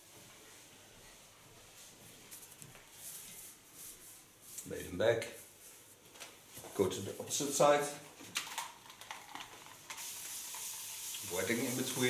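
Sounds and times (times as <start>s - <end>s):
heated razor sizzling through hair: 9.9s - 12.0s.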